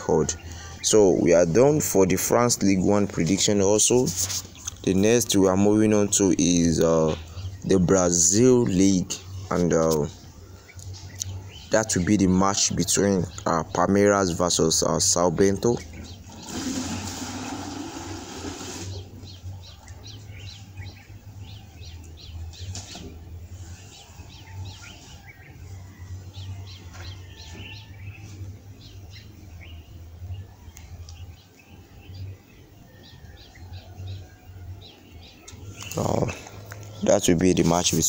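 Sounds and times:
rustling noise: 0:03.2 - 0:04.9, 0:22.5 - 0:25.6.

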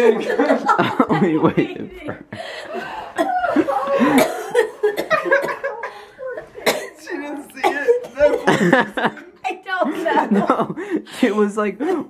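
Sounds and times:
people laughing: 0:00.0 - 0:11.4.

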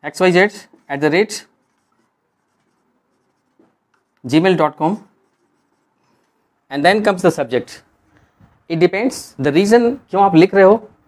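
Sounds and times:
marker strokes on whiteboard: 0:00.2 - 0:07.4.

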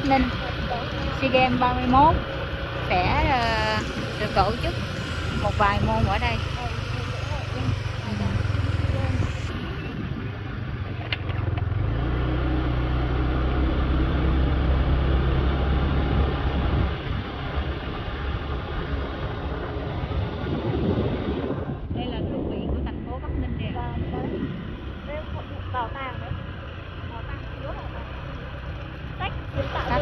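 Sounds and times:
road noise: 0:00.0 - 0:30.0
vehicle engine driving: 0:00.0 - 0:30.0.

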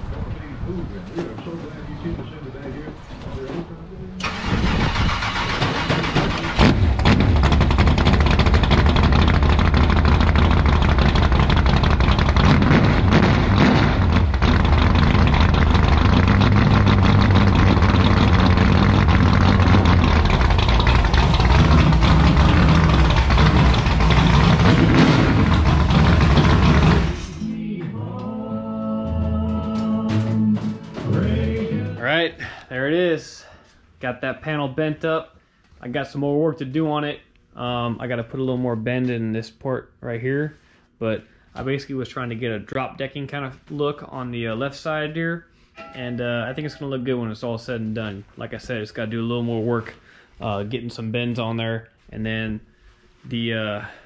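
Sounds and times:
race car engine running loudly: 0:05.7 - 0:27.4.

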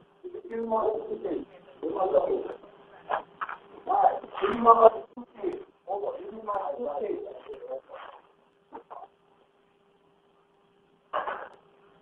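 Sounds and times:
faint steady hum: 0:00.0 - 0:12.0
voices over telephone line: 0:00.2 - 0:09.1.

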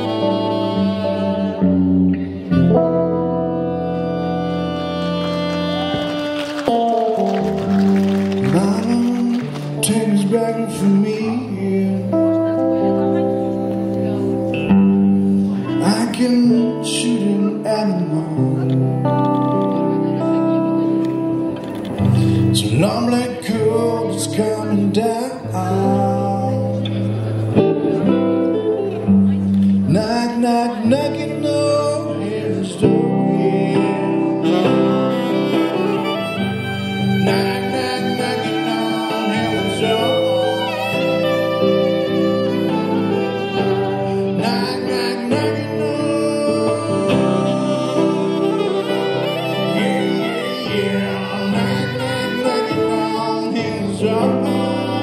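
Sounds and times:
man singing: 0:00.0 - 0:01.7, 0:08.4 - 0:14.4, 0:15.5 - 0:20.8, 0:22.0 - 0:29.0, 0:29.8 - 0:55.0
slow electric guitar melody: 0:00.0 - 0:55.0.

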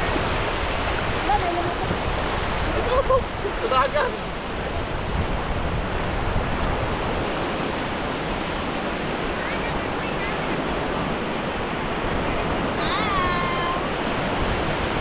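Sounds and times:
waves breaking and surf washing: 0:00.0 - 0:15.0.

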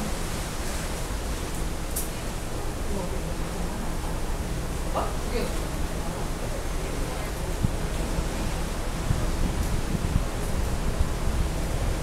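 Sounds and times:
wind and sea rushing: 0:00.0 - 0:12.0.

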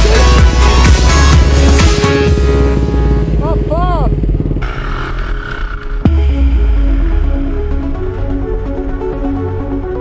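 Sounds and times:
dirt bike engine running: 0:00.0 - 0:06.3.

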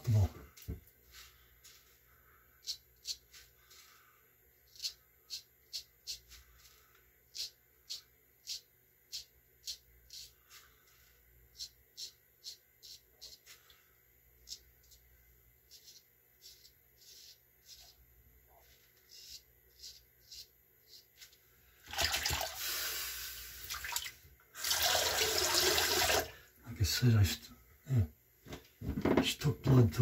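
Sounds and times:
razor scraping stubble: 0:15.7 - 0:18.0, 0:18.6 - 0:21.1.

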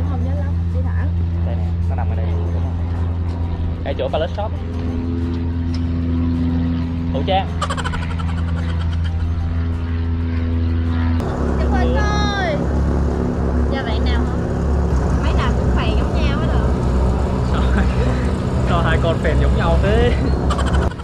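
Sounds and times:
people talking: 0:00.0 - 0:03.1, 0:03.9 - 0:04.5, 0:10.9 - 0:12.6, 0:13.7 - 0:14.4, 0:15.2 - 0:16.7, 0:17.5 - 0:20.2
low mechanical drone: 0:00.0 - 0:21.0
people laughing: 0:17.5 - 0:18.4.

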